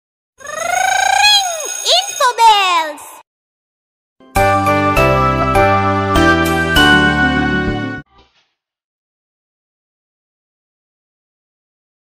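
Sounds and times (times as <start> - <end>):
high-pitched voice-like call: 0.4 - 3.2.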